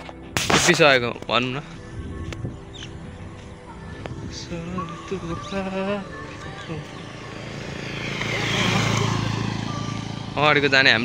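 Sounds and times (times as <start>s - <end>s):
motorcycle passing on gravel: 4.3s - 11.0s.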